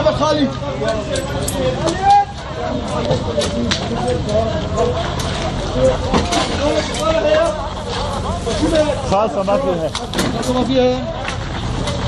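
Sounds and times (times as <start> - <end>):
people shouting: 1.8 - 2.9.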